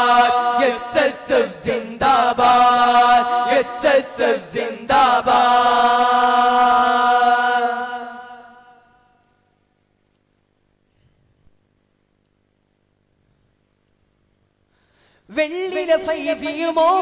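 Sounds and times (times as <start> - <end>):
voices singing chant-like song: 0.0 - 9.2.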